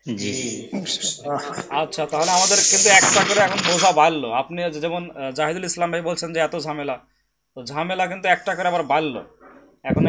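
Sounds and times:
hiss over voice: 0.0s - 3.9s
person speaking: 0.0s - 5.8s, 7.7s - 10.0s.

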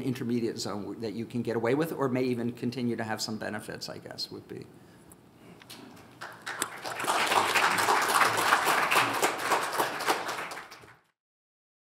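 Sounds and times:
audience applauding: 6.2s - 11.1s.

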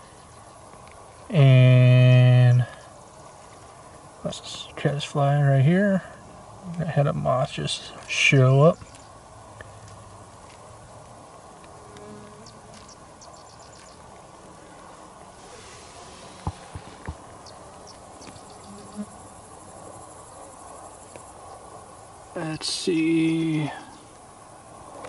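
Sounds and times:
insects chirping: 0.0s - 25.0s
steady background hiss: 0.0s - 25.0s.

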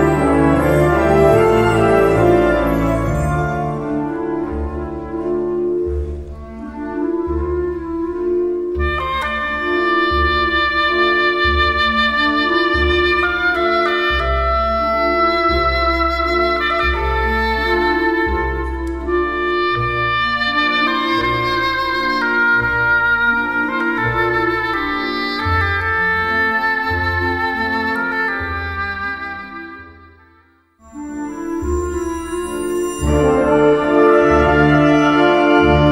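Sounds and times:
oboe melody: 0.0s - 35.9s.

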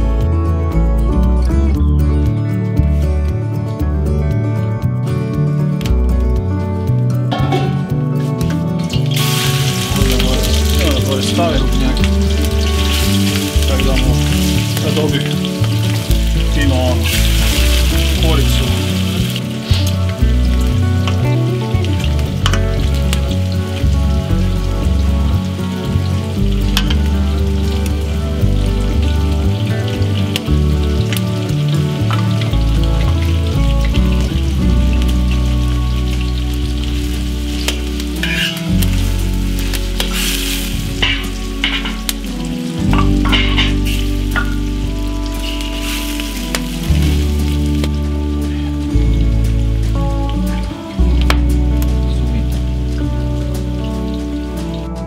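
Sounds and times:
background music: 0.0s - 55.0s
meat sizzling in a pan: 7.8s - 55.0s.

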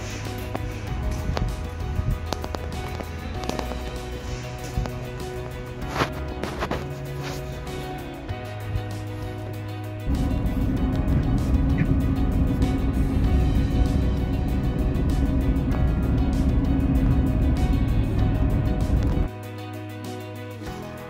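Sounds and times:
background music: 0.0s - 21.0s.

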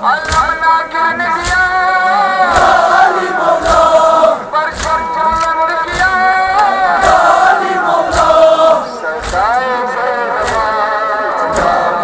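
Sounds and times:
crowd chanting a lament: 0.0s - 12.0s.

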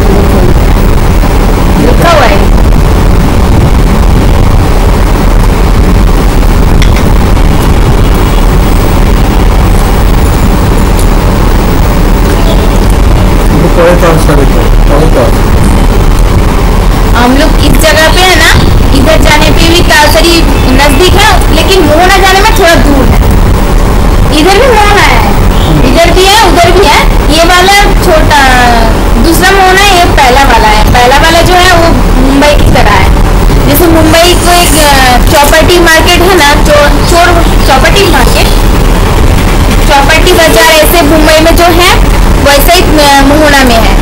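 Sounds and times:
wind buffeting microphone: 0.0s - 13.5s, 14.8s - 43.2s
steady low hum: 0.0s - 44.0s
man talking: 13.5s - 15.5s, 25.6s - 25.9s.

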